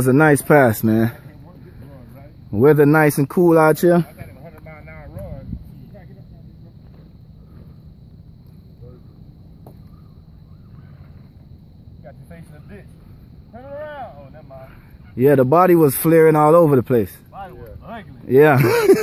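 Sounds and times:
distant men's voices talking: 0.0s - 19.0s
low background rumble: 4.0s - 15.2s.

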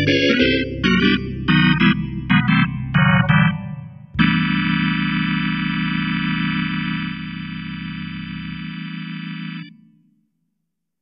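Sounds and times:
electronic organ sustained chord: 0.0s - 9.8s.

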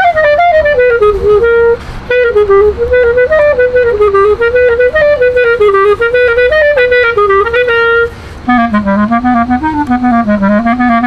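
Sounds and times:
solo clarinet melody: 0.0s - 11.0s.

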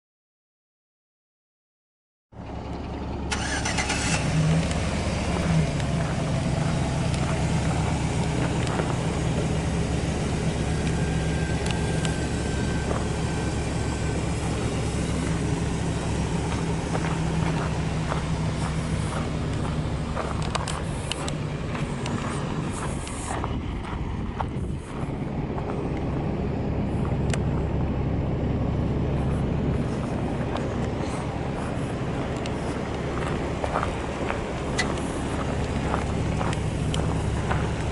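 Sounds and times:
pickup truck engine idling: 2.4s - 37.9s.

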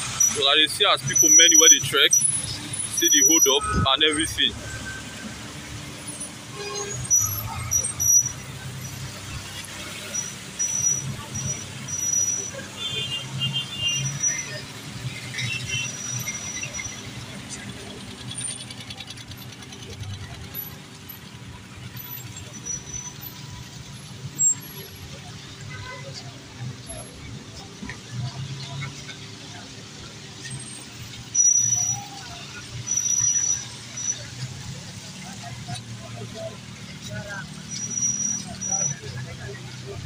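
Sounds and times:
motorcycle and car engines: 0.0s - 40.0s
thin high squeals: 0.2s - 12.7s, 13.3s - 20.8s, 30.4s - 35.8s, 37.1s - 40.0s
voices in background: 6.5s - 40.0s.

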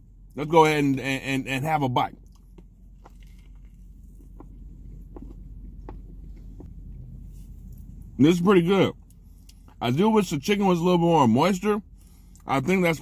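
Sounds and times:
steady low hum: 0.0s - 13.0s
person chewing food: 2.2s - 6.8s.

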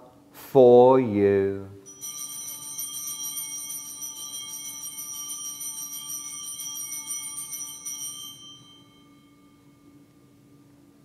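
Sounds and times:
altar bells jingling: 1.8s - 10.1s.

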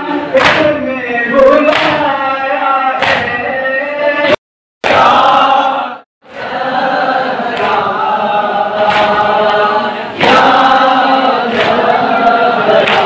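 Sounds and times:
group of voices chanting a lament: 0.0s - 13.0s.

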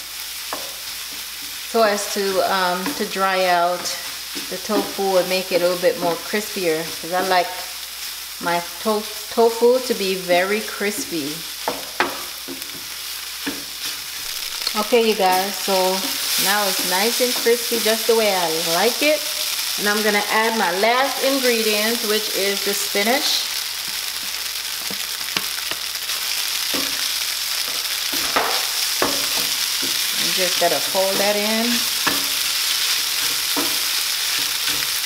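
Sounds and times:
food sizzling in a frying pan: 0.0s - 35.0s
wooden spatula knocking pan: 10.9s - 14.0s, 26.7s - 32.4s.

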